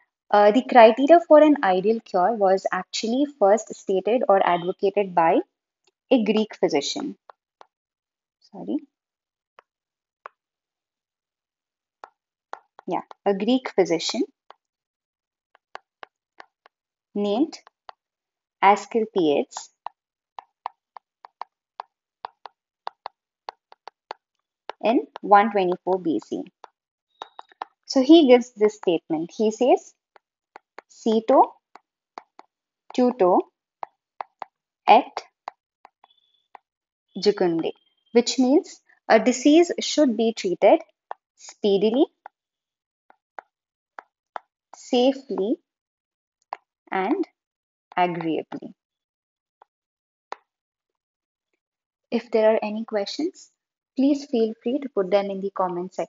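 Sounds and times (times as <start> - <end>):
stylus tapping on glass screen: 15.6 - 16.8, 19.5 - 27.9, 30.1 - 32.6, 33.3 - 34.6, 35.2 - 36.7.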